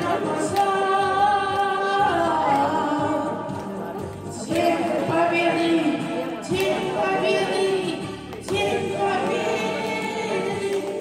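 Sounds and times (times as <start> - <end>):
boy singing into a microphone: 0.0 - 11.0.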